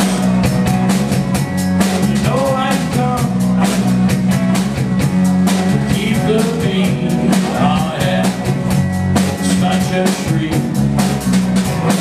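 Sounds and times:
bass guitar: 0.0 - 12.0
drum kit beat: 0.0 - 12.0.

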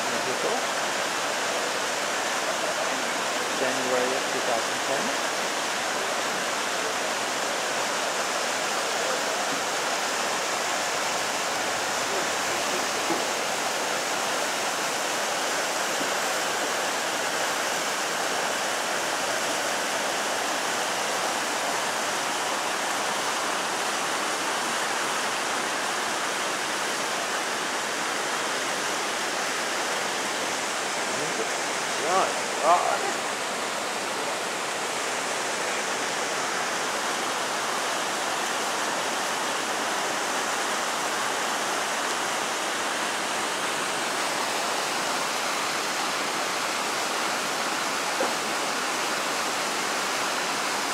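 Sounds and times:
river rushing over boulders: 0.0 - 50.9.

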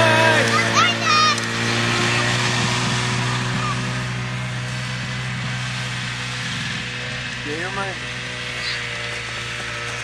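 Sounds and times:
snowmobile engine running: 0.0 - 10.0.

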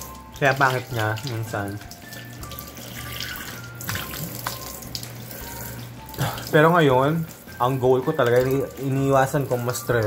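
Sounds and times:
tap water running into sink: 0.0 - 10.0.

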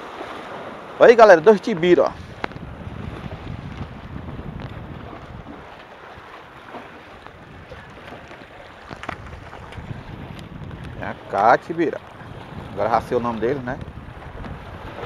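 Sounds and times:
surf on rocks: 0.0 - 15.0
wind buffeting microphone: 1.4 - 15.0.

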